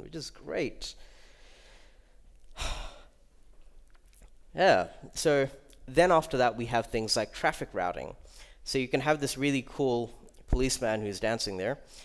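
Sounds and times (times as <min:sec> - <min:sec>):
man sighing: 0:02.5 - 0:03.2.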